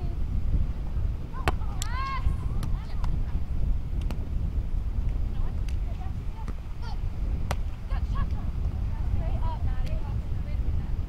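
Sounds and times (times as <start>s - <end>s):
wind rumble on microphone: 0.0s - 11.0s
volleyball being struck: 7.4s - 7.8s.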